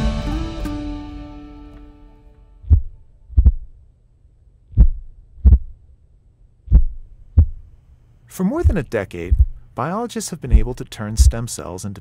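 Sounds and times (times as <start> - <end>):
music jingle: 0.0 - 2.5
slow heartbeat thumps: 2.6 - 3.8, 4.7 - 5.8, 6.6 - 7.7, 8.5 - 9.7, 10.5 - 11.5.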